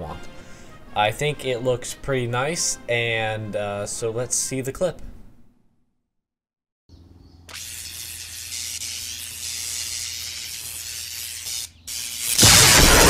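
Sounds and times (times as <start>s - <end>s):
electric hissing: 7.5s - 13.0s.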